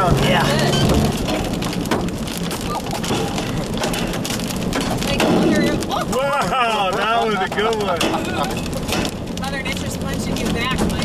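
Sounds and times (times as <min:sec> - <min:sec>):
rain pelting a vehicle: 0:00.0 - 0:11.0.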